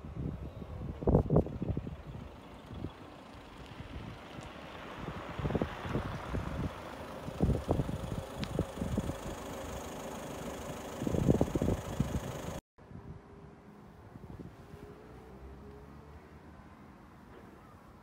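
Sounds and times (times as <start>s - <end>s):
wind buffeting microphone: 0.0s - 9.5s, 11.0s - 13.4s, 14.0s - 14.9s
van engine and tyres: 0.0s - 18.0s.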